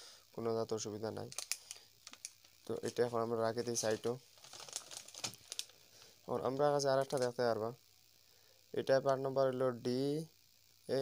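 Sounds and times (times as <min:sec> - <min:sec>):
plastic packets crinkling: 0:01.3 - 0:06.2, 0:07.0 - 0:07.4.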